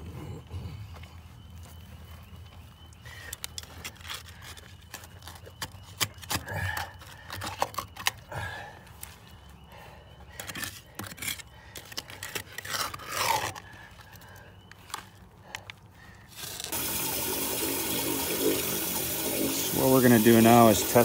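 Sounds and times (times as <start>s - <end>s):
running water rushing: 16.7s - 21.0s
hand tool scraping sludge: 19.3s - 21.0s.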